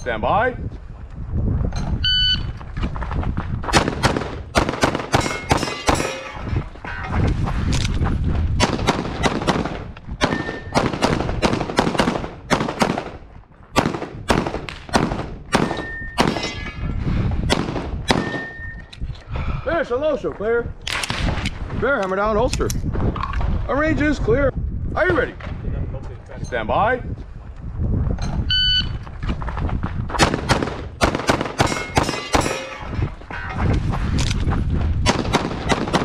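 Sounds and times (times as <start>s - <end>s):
pistol firing rapid shots: 3.8s - 6.1s, 8.6s - 13.2s, 13.8s - 16.4s, 30.2s - 32.5s, 35.1s - 36.0s.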